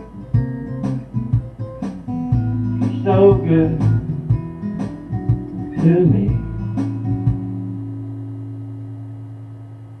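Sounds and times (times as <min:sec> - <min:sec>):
guitar chord ringing out: 0:00.0 - 0:10.0.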